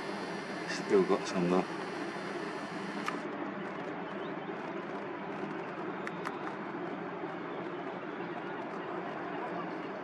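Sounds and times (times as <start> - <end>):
outdoor background hum: 0.0 - 10.0.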